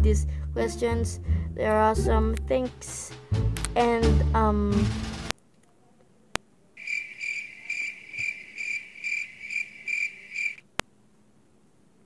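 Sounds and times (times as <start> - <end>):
cricket chirping: 6.8 - 10.7.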